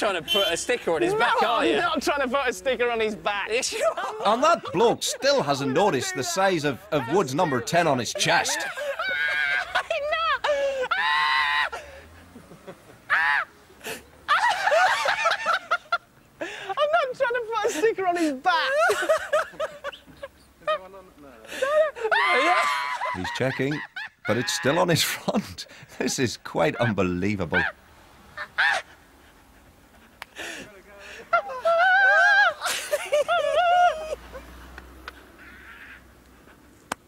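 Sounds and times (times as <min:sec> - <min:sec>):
men laughing: 0:00.0 - 0:36.6
quiet street background: 0:00.0 - 0:37.0
man yelping: 0:00.3 - 0:02.2, 0:03.5 - 0:11.8, 0:16.8 - 0:19.0, 0:21.7 - 0:23.4, 0:24.2 - 0:25.3, 0:26.8 - 0:27.8.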